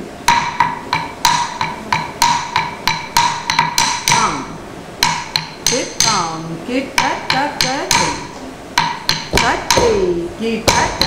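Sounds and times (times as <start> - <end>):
wooden stick beating a wooden block: 0.2 - 6.4, 7.0 - 11.0.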